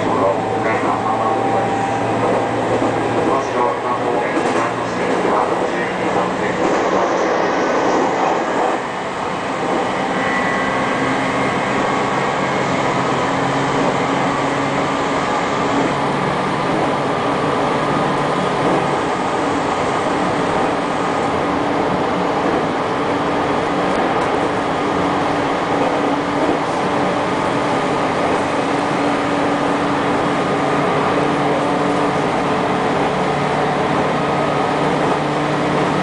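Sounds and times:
train motor hum: 0.0s - 36.0s
train wheels rumbling on rails: 0.0s - 36.0s.

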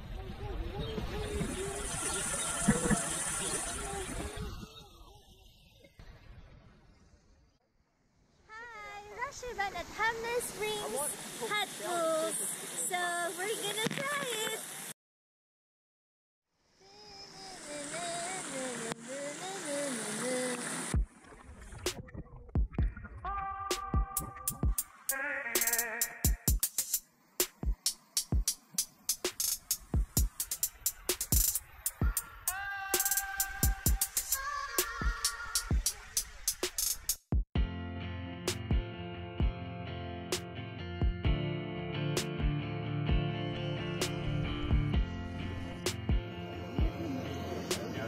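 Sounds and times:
water pouring and splashing: 0.8s - 4.9s
steady high hiss: 8.5s - 14.9s, 16.6s - 21.0s, 23.8s - 37.2s, 44.0s - 48.0s
person humming a tune: 23.3s - 26.5s, 32.5s - 35.6s.

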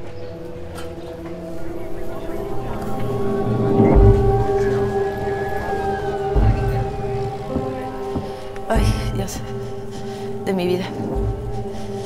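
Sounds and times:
steady low drone: 0.0s - 12.0s
siren wailing: 1.0s - 10.4s.

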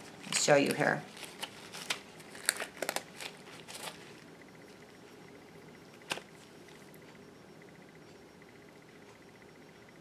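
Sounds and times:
plastic crinkling and rustling: 0.6s - 4.2s.

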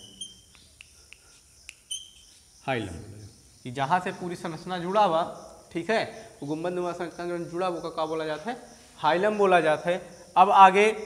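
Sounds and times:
chalk writing on a blackboard: 0.0s - 2.6s.

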